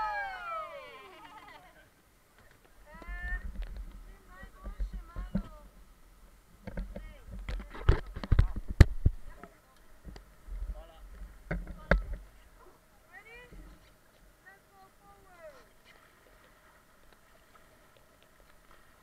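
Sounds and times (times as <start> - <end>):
people yelling and calling: 0.0 - 1.9.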